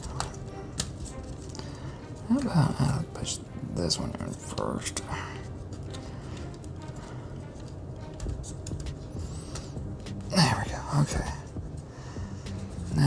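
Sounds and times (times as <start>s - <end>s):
wooden parts clicking and tapping: 5.7s - 10.2s.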